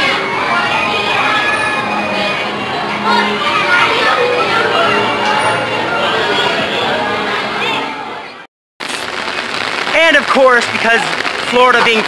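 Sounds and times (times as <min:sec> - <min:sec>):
carousel music: 0:00.0 - 0:08.4
crowd noise: 0:00.0 - 0:08.5, 0:09.1 - 0:12.0
heavy rain pouring: 0:08.8 - 0:12.0.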